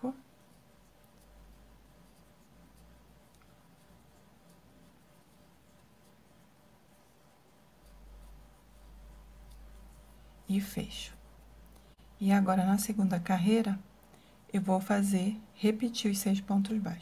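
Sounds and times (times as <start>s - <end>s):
faint yarn rustling: 0.0s - 17.0s.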